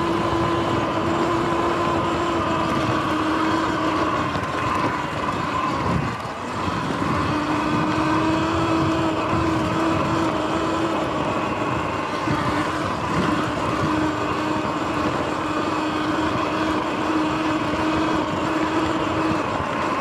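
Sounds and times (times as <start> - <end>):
electric motor whine: 0.0 - 20.0
tyres rumbling on dirt: 0.0 - 20.0
wind: 0.0 - 20.0.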